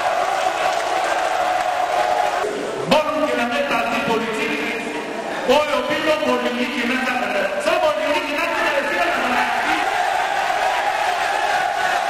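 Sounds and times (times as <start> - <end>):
crowd cheering and shouting: 0.0 - 2.9, 8.7 - 12.0.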